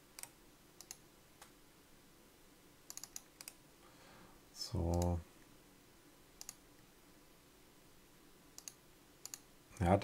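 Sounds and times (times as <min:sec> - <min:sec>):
computer clicks: 0:00.1 - 0:01.5, 0:02.9 - 0:03.6, 0:04.9 - 0:05.2, 0:06.4 - 0:06.6, 0:08.6 - 0:09.9.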